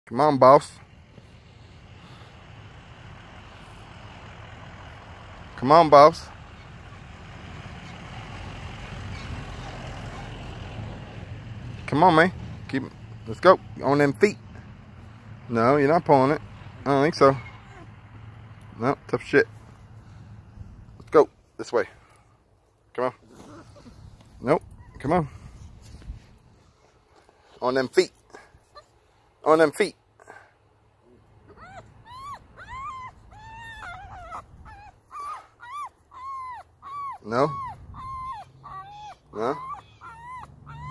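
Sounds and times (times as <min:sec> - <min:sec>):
vehicle engine rumbling: 0:00.1 - 0:40.9
puppy whining: 0:09.0 - 0:10.5, 0:17.3 - 0:17.9, 0:23.3 - 0:25.8, 0:31.4 - 0:40.9.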